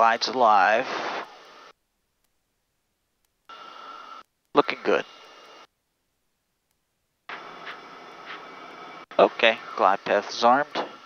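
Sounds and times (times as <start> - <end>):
faint steady whine: 0.0 - 11.0
aircraft cockpit rushing hiss: 7.3 - 9.9.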